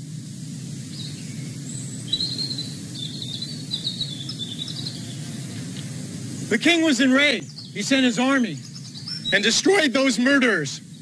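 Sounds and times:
low background rumble: 0.0s - 11.0s
small birds chirping: 0.2s - 11.0s.

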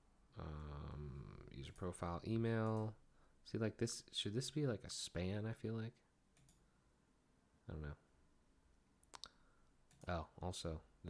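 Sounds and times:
person muttering: 0.4s - 1.6s
computer mouse clicks: 6.4s - 6.6s.

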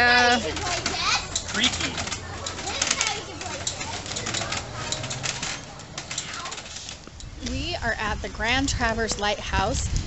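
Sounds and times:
wooden glider creaking: 0.0s - 10.0s.

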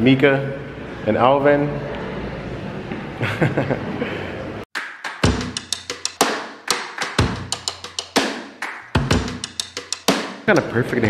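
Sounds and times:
background music with drum beat: 4.8s - 10.8s
deep kick drum: 5.2s - 5.6s.

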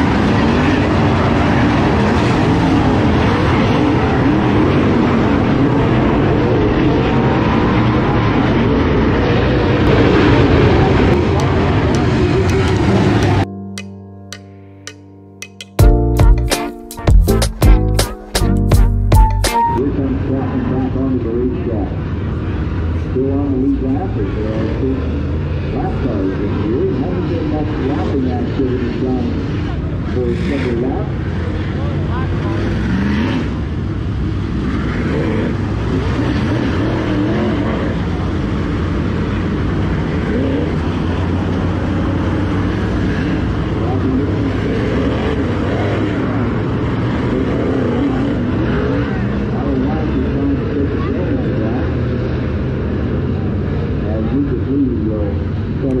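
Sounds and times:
race car engines at speed: 0.0s - 13.5s, 19.8s - 56.0s
voices: 10.4s - 13.4s.

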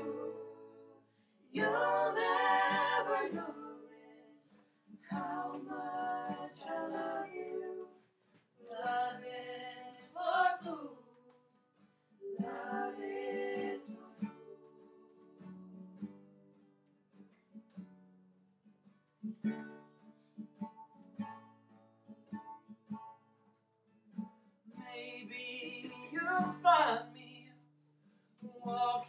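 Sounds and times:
acoustic guitar playing: 0.0s - 7.8s, 11.8s - 28.8s
voices singing: 0.0s - 8.0s, 8.6s - 11.5s, 12.2s - 15.2s.

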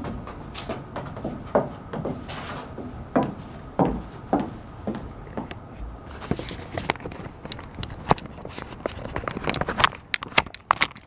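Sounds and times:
footsteps on wooden deck boards: 0.0s - 11.0s.

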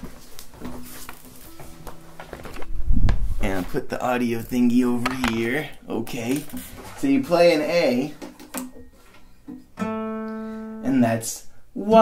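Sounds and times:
knocks and rustles of handling: 0.0s - 3.8s
heavy low thump: 2.8s - 3.5s
acoustic guitar strings ringing: 8.7s - 10.8s.

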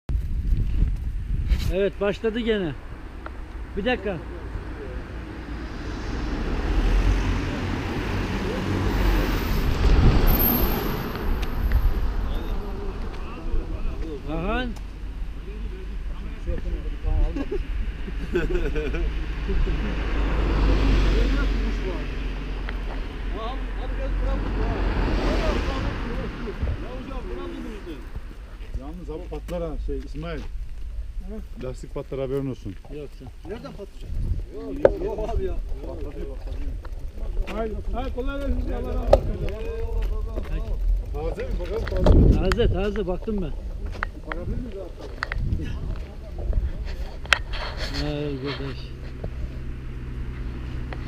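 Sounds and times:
wind rumble on microphone: 0.1s - 3.8s, 4.5s - 21.2s, 24.3s - 29.4s, 33.0s - 51.0s
cars passing by: 1.2s - 51.0s
people talking: 3.7s - 5.3s, 12.1s - 14.8s, 15.4s - 20.0s, 23.3s - 30.5s, 31.2s - 49.1s.

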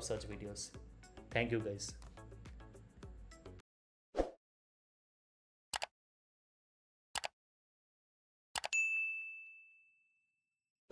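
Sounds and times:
notification bell ding: 8.7s - 10.2s.

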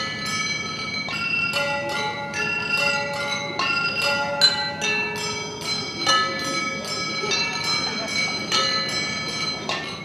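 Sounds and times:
glasses struck ringing: 0.0s - 10.0s.

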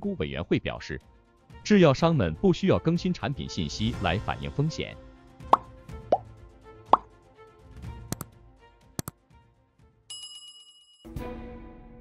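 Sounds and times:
background music: 0.0s - 10.1s, 11.1s - 12.0s
plop sound effects: 5.5s - 6.3s.

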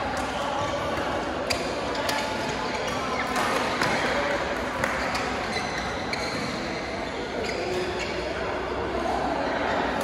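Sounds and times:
shoes squeaking on court: 4.8s - 8.4s.

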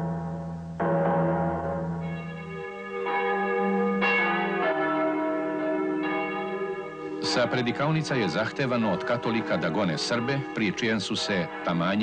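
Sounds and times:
church bells ringing: 0.8s - 12.0s.

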